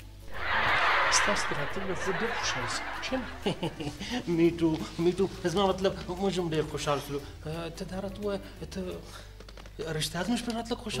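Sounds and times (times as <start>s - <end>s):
man snickering and chuckling: 0.3s - 4.2s
sitcom laugh track: 0.3s - 4.9s.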